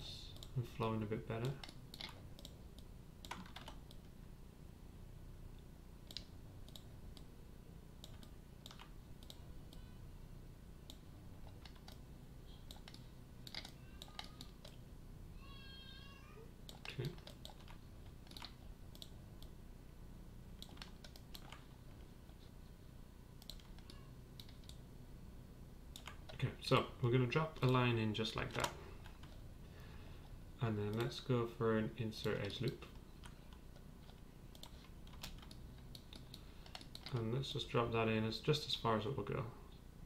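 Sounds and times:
faint low steady hum: 0.0s - 40.0s
keyboard and mouse clicks: 1.4s - 4.1s, 6.0s - 7.3s, 8.0s - 9.8s, 10.8s - 12.0s, 12.7s - 14.8s, 16.7s - 19.6s, 20.6s - 21.6s, 23.4s - 24.8s, 25.9s - 26.4s, 28.4s - 29.4s, 32.2s - 37.3s.

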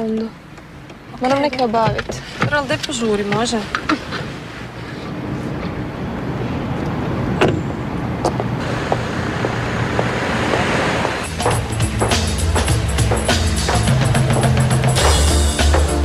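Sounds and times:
street traffic noise: 0.0s - 16.0s
music with drum beat: 11.2s - 16.0s.

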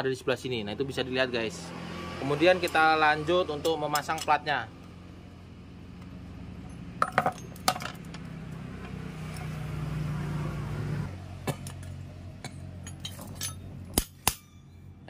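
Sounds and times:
metal parts clinking: 6.6s - 8.2s, 12.7s - 14.9s.

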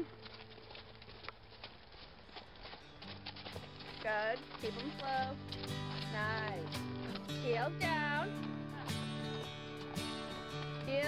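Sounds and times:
horse hoofbeats on snow: 0.0s - 11.0s.

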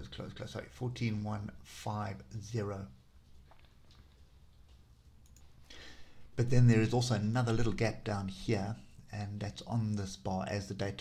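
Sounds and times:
small clicks: 3.3s - 5.6s
soft breath: 5.5s - 6.4s.

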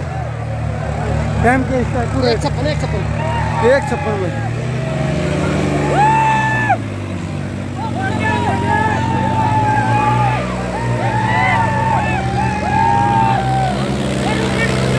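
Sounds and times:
crowd of men cheering: 0.0s - 14.9s
tractor diesel engine running: 0.0s - 14.9s.

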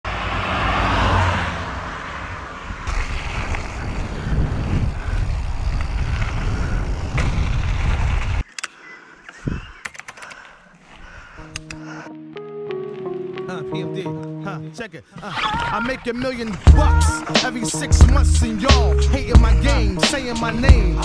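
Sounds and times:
car passing: 0.1s - 5.1s
bike tyre rumble: 2.2s - 8.4s
wind on microphone: 2.7s - 8.4s, 9.4s - 9.8s
faint clicks: 8.4s - 10.6s.

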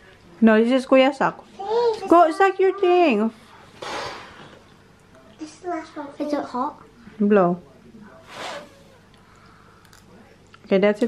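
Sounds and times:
child blowing on food: 3.8s - 4.3s.

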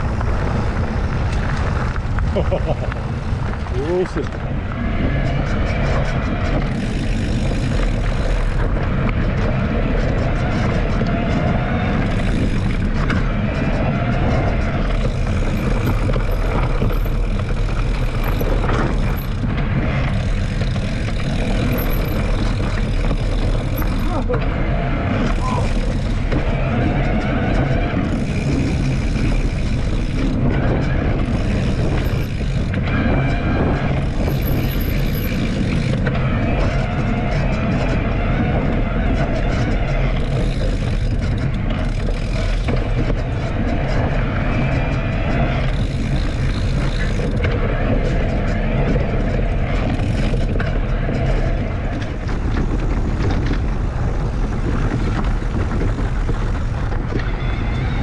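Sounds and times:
bike tyres rolling on dirt trail: 0.0s - 58.0s
wind buffeting microphone: 0.0s - 58.0s.

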